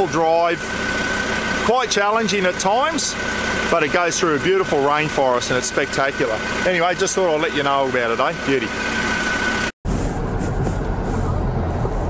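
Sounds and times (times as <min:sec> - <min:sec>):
vehicle engine and tyre rumble: 0:00.0 - 0:12.0.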